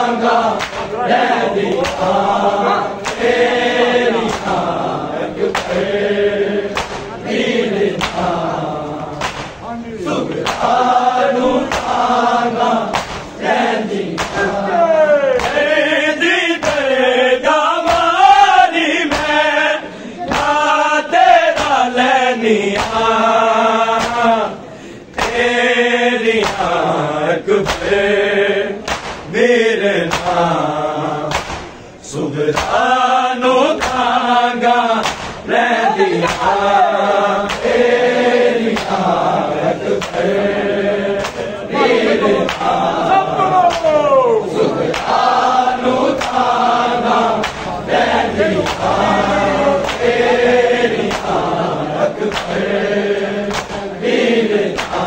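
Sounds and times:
men chanting in unison: 0.0 - 55.0
hands slapping chests: 0.5 - 1.0, 1.6 - 2.4, 3.0 - 3.6, 4.2 - 4.8, 5.4 - 5.9, 6.7 - 7.2, 7.9 - 9.6, 10.3 - 10.9, 11.5 - 13.4, 14.0 - 14.6, 15.4 - 15.8, 16.6 - 17.0, 17.8 - 18.2, 19.0 - 19.5, 20.2 - 20.6, 21.5 - 21.9, 22.7 - 23.1, 23.9 - 24.3, 25.1 - 25.5, 26.4 - 26.8, 27.6 - 28.0, 28.8 - 29.3, 30.0 - 30.4, 31.3 - 31.8, 32.5 - 32.8, 33.8 - 34.2, 35.0 - 35.5, 36.2 - 36.7, 37.4 - 37.9, 38.6 - 39.2, 39.8 - 40.6, 41.2 - 41.5, 42.4 - 44.0, 44.7 - 51.6, 52.2 - 52.7, 53.4 - 53.9, 54.6 - 55.0.

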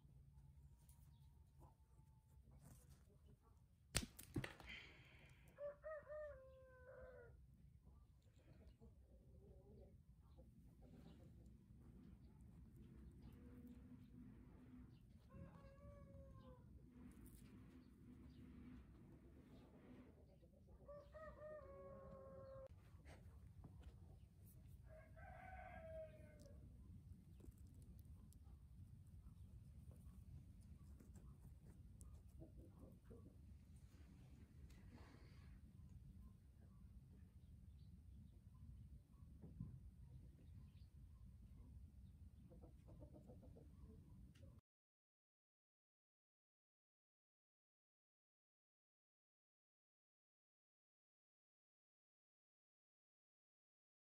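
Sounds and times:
dried mud nest cracking: 3.9 - 5.0
rooster crowing: 5.6 - 7.4, 20.9 - 22.7, 24.8 - 26.6.

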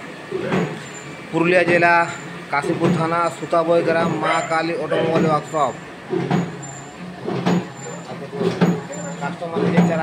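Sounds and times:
machine motor hum: 0.0 - 10.0
sharp mechanical knock: 6.1 - 6.6, 7.2 - 7.7, 8.4 - 8.9.

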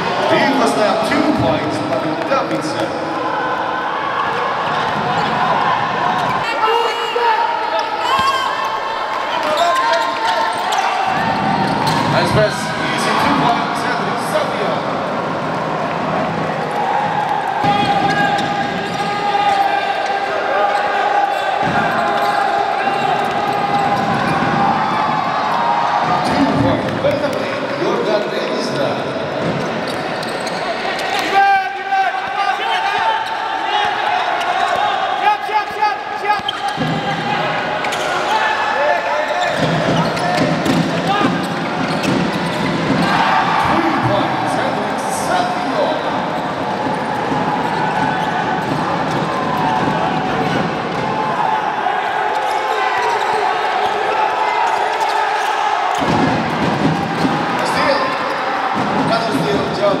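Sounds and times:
voices in a hall: 0.0 - 60.0.

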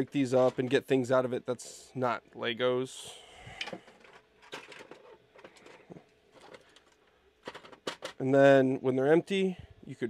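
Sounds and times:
plastic pieces clicking and rattling: 3.6 - 8.2.

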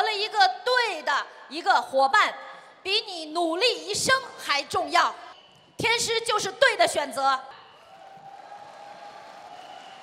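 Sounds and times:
audience applause: 7.8 - 10.0.

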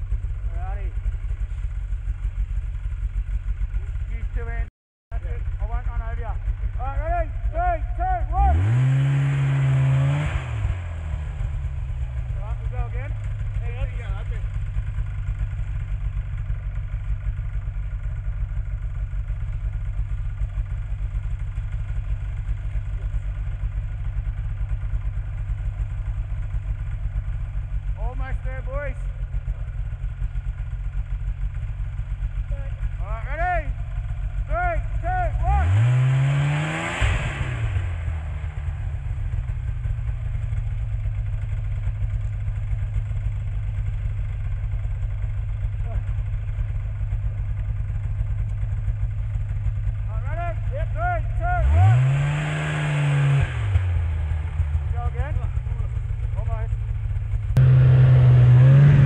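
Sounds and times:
snowmobile engine revving: 5.3 - 14.5, 32.5 - 39.3, 50.1 - 56.6, 57.6 - 59.0
track churning snow: 5.3 - 17.0, 30.6 - 56.8, 57.5 - 59.0.

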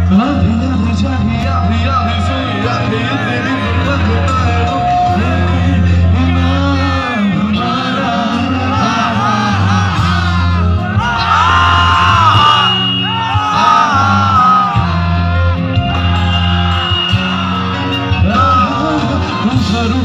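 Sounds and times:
man singing into a microphone: 0.0 - 15.6, 17.4 - 20.0
held bass notes: 0.0 - 20.0
live band music: 0.0 - 20.0.

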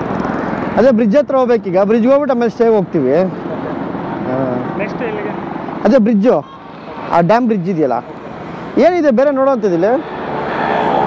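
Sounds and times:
bus driving past: 2.7 - 11.0.

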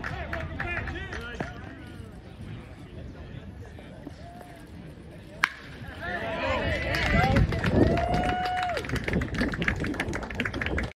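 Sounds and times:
bat cracking a ball: 5.4 - 5.8
people shouting and cheering: 5.8 - 9.0.

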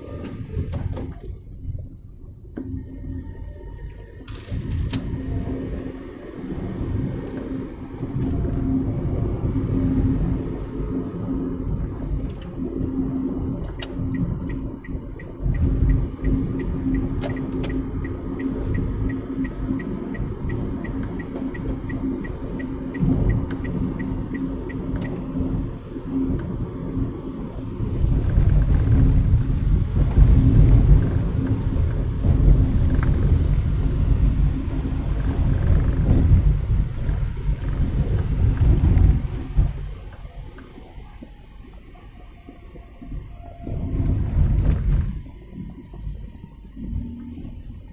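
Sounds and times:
car cabin road and engine rumble: 0.0 - 47.9
steady hum: 0.0 - 47.9
evenly spaced ticks: 11.6 - 27.1.

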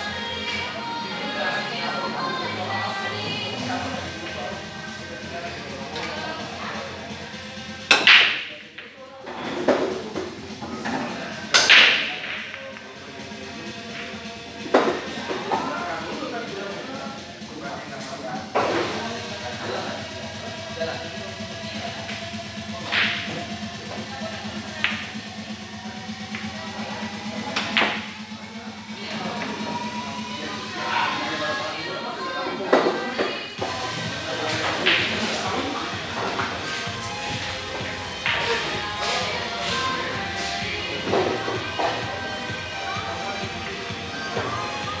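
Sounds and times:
background music: 0.0 - 45.0
cue striking ball: 8.0 - 9.0
pool balls clattering: 32.8 - 42.2.

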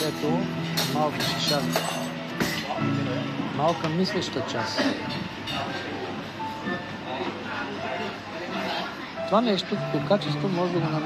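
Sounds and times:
faint background music: 0.0 - 11.0
restaurant hubbub: 0.0 - 11.0.

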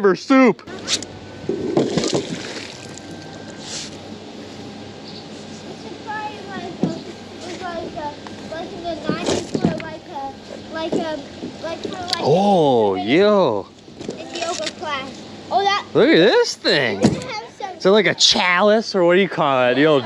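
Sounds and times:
magnet splashing into river: 1.7 - 3.0
water sloshing and dripping: 1.7 - 3.2.

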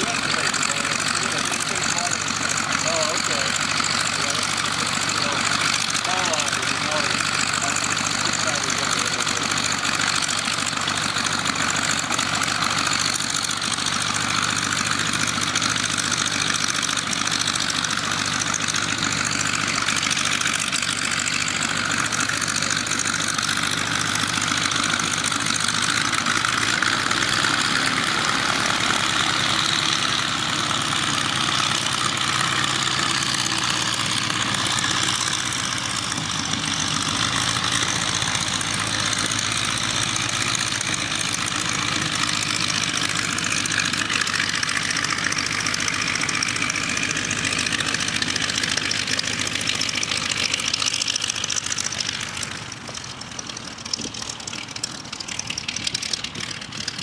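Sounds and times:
propeller plane engine idling: 0.0 - 57.0.

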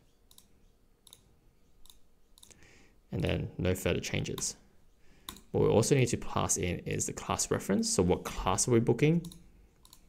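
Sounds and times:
faint computer mouse clicks: 0.3 - 2.6, 9.2 - 10.0.

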